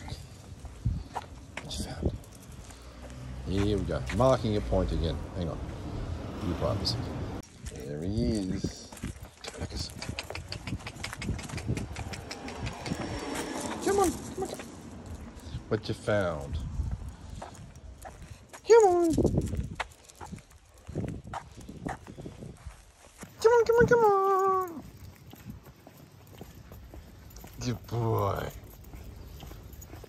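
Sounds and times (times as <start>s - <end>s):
footsteps on concrete: 0.0s - 5.8s, 7.4s - 30.0s
dog claws clicking on concrete: 8.6s - 15.5s.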